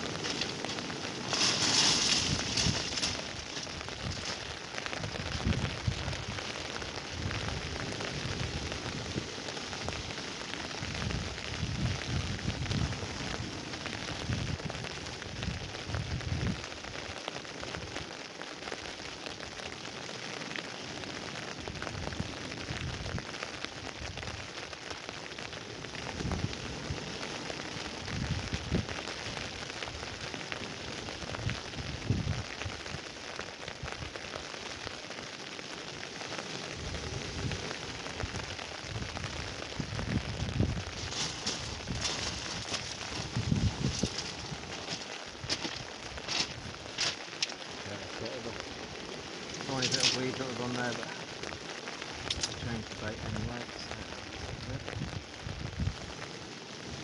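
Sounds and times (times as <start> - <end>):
wind hissing: 0.0 - 14.7, 36.1 - 57.0
wind gusts buffeting microphone: 0.0 - 18.1, 21.4 - 35.0, 36.0 - 57.0.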